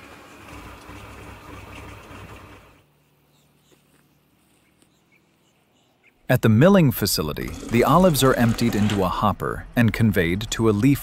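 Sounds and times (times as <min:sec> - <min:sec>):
tractor engine rumble with rattle: 0:00.0 - 0:02.8, 0:06.9 - 0:11.0.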